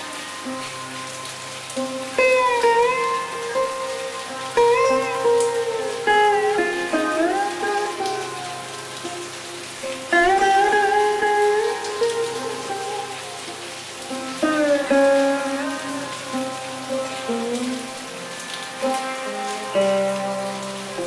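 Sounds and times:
rain hiss: 0.0 - 21.0
sitar playing slowly: 0.0 - 21.0.

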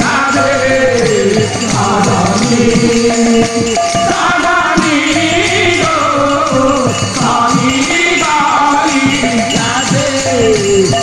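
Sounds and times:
higher voice singing: 0.0 - 11.0
jingling percussion: 0.0 - 11.0
voices singing long note: 0.0 - 11.0.

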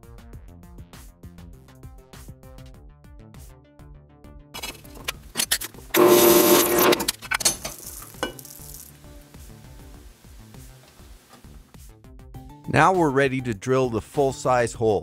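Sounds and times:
metal scraping and clatter: 4.6 - 8.9.

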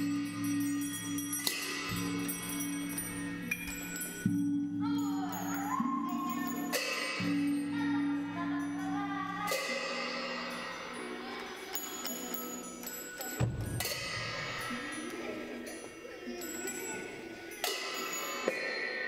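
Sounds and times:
bells or gongs ringing: 0.0 - 19.0.

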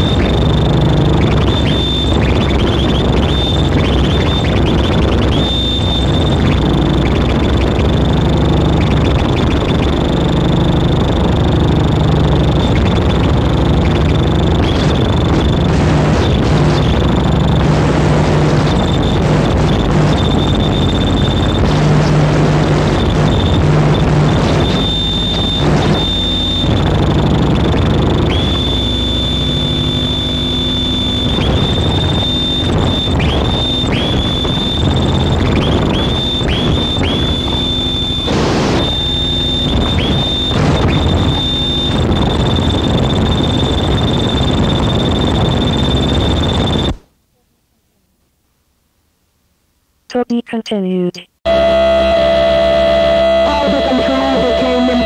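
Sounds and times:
high whine dipping in pitch: 0.0 - 47.0, 51.4 - 55.0
distorted noise music: 0.0 - 47.2, 50.1 - 55.0.

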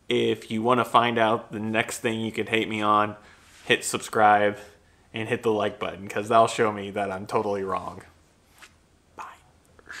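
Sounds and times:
soft breath: 3.2 - 3.7, 4.6 - 5.2, 8.4 - 10.0.

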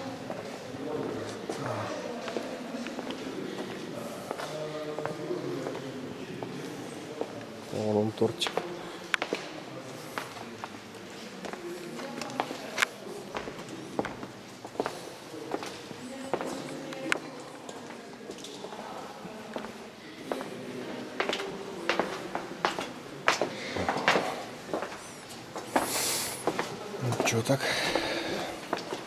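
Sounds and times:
faint indistinct voices: 0.0 - 29.0
footsteps on walkway: 8.4 - 18.8, 19.5 - 29.0.

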